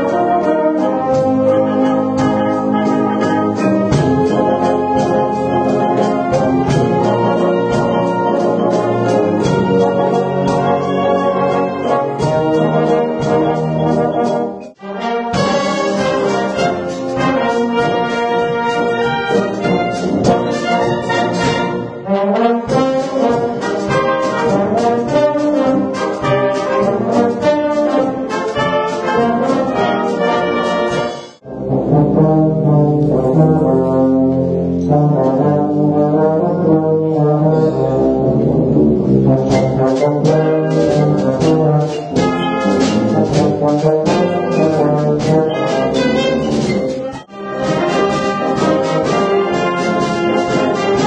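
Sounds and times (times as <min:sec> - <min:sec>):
brass wind band playing: 0:00.0 - 0:51.0.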